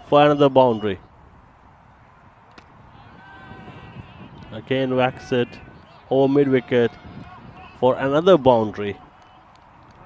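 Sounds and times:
faint outdoor ambience: 0:00.0 - 0:10.0.

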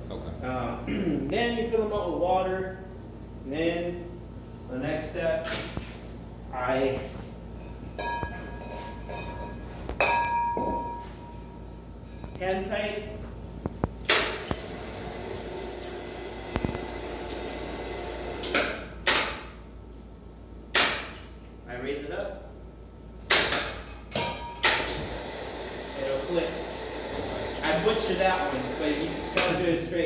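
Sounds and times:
metal cylinders clinking: 0:07.7 - 0:11.4
bell-like metal ringing: 0:07.9 - 0:11.5.

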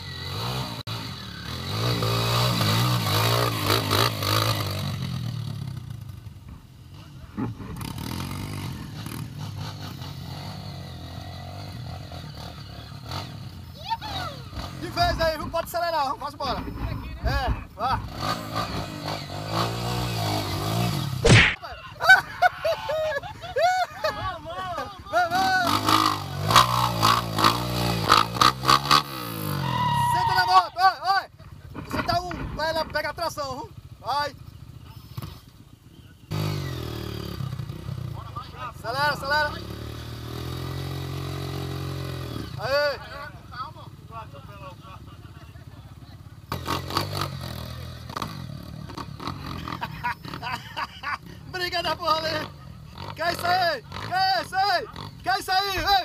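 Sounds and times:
dirt bike engine revving: 0:00.0 - 0:06.3, 0:06.9 - 0:21.6, 0:25.1 - 0:30.8, 0:31.6 - 0:43.3, 0:45.6 - 0:55.8
people shouting: 0:29.5 - 0:31.0.

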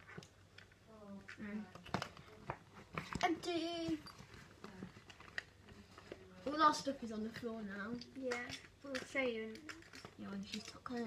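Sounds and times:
plastic bag rustling: 0:01.2 - 0:11.0.

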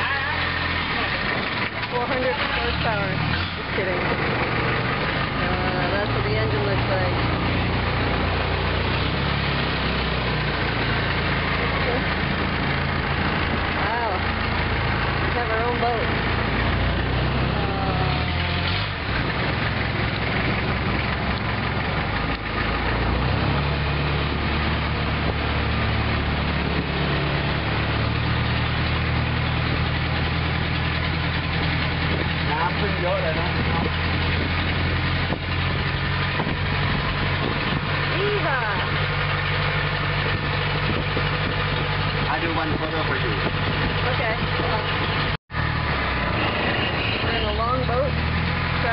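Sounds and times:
boat engine running: 0:00.0 - 0:48.9.

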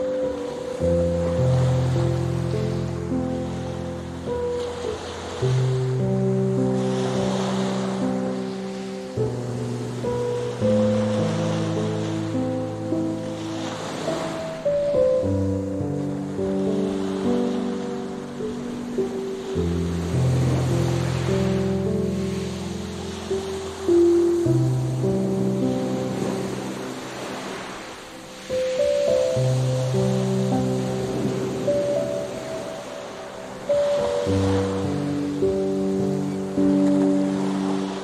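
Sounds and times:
ocean surf washing on beach: 0:00.0 - 0:38.0
slow relaxing music: 0:00.0 - 0:38.0.

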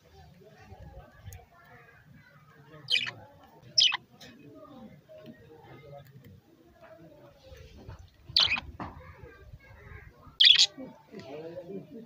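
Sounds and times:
faint background murmur: 0:00.0 - 0:12.0
budgerigar chirps: 0:02.9 - 0:03.2, 0:03.8 - 0:04.0, 0:08.4 - 0:08.7, 0:10.4 - 0:10.8.

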